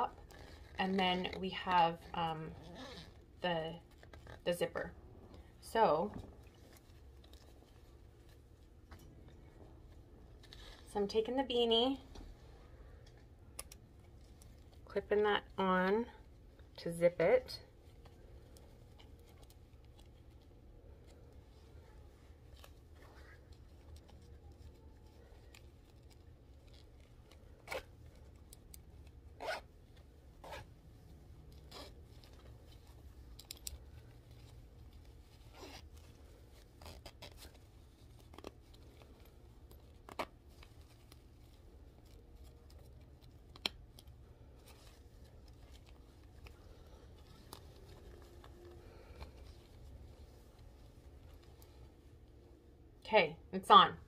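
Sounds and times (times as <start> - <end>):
zipper rasps and clicks: 0.0 - 7.7, 22.5 - 50.0.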